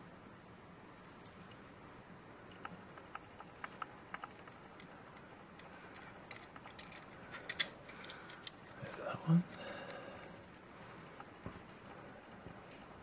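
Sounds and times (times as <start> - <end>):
small clicks of screws and nuts: 2.6 - 8.8.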